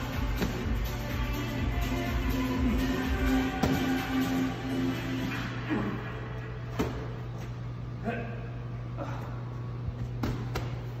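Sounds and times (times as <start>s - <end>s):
steady low hum: 0.0s - 11.0s
medicine ball thud: 0.2s - 0.8s, 3.5s - 4.0s, 6.7s - 7.2s, 10.0s - 11.0s.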